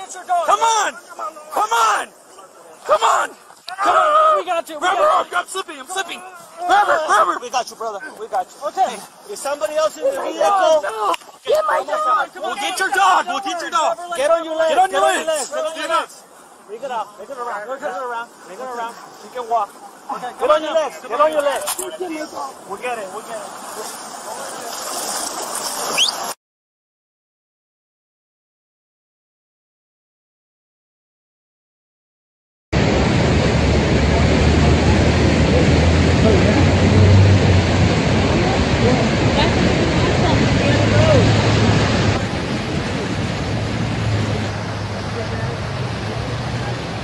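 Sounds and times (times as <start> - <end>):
rushing flood water: 0.0 - 26.4, 32.8 - 47.0
short rising squeak: 25.2 - 26.4.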